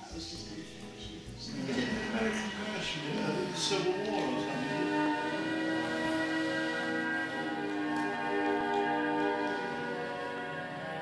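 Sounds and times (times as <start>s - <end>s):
film credits music from television: 0.0s - 11.0s.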